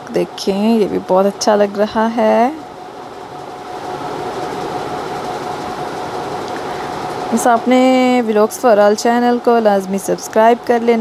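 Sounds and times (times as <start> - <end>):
machine whoosh with whine: 1.8 - 7.9.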